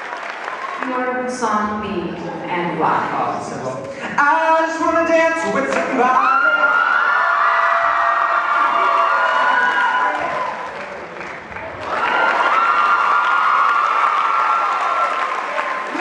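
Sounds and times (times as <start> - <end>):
audience applauding: 0.0 - 1.0, 5.8 - 16.0
high-pitched yells: 6.2 - 10.6.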